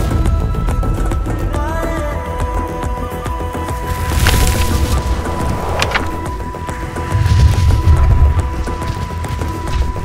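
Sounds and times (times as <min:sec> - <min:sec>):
steady music tones: 0:03.4 - 0:10.0
sharp crack: 0:03.9 - 0:06.8
noisy crackling burst: 0:03.9 - 0:08.3
low rumble: 0:04.2 - 0:09.1.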